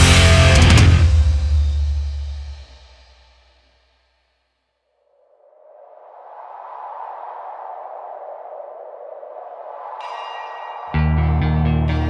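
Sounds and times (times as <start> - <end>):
metal band playing loudly: 0.0 - 2.5
rushing noise: 5.0 - 11.9.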